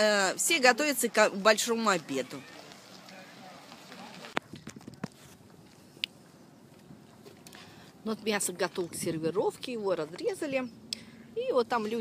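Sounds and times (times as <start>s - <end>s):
faint outdoor background: 0.0s - 12.0s.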